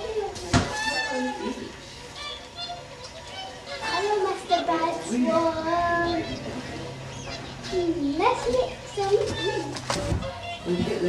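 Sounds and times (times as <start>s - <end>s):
swans honking: 0.7s - 11.0s.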